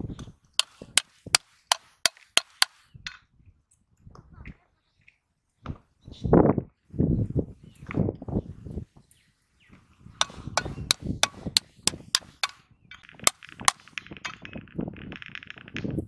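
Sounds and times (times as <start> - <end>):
knife tapping snail shell: 0.6 - 2.8, 10.2 - 12.6.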